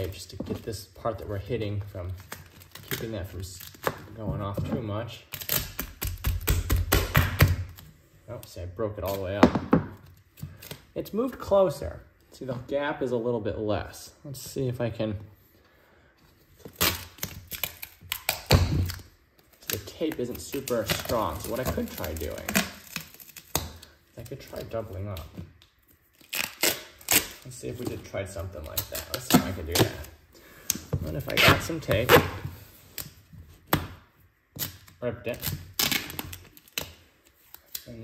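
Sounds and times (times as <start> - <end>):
tape tearing from roll: 1.6 - 4.1, 5.2 - 7.9, 16.6 - 33.2, 34.5 - 38.0.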